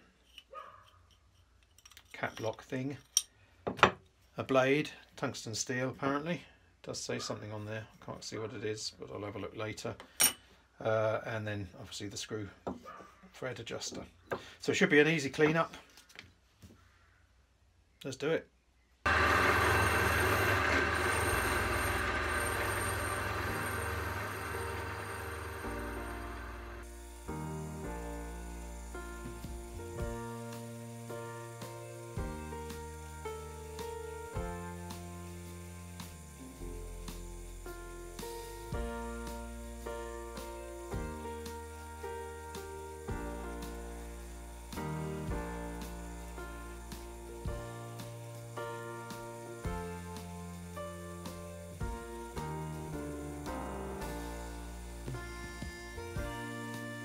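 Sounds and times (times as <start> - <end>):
stepping melody notes: 54.9 - 57.0.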